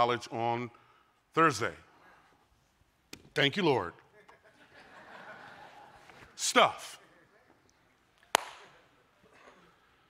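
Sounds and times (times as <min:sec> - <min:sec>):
sharp crack: 0:08.3 - 0:08.8.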